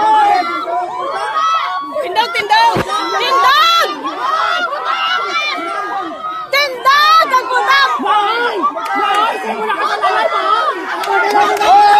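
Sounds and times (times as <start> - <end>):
people talking at once: 0.0 - 11.9.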